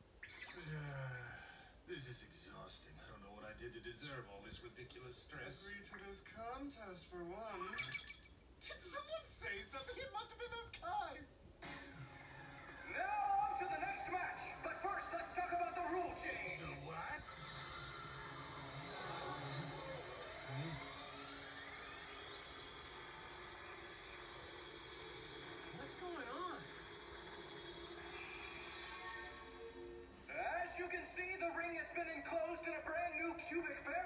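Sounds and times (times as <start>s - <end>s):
background music: 11.6s - 34.0s.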